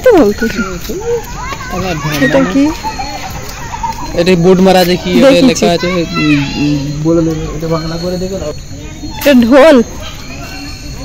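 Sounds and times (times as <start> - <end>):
child's high voice: 0.0 - 3.9, 5.6 - 6.9, 8.8 - 11.0
people talking: 0.0 - 11.0.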